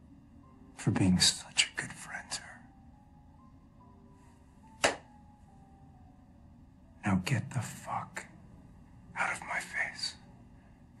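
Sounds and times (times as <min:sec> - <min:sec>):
faint steady background tones: 0:00.0 - 0:11.0.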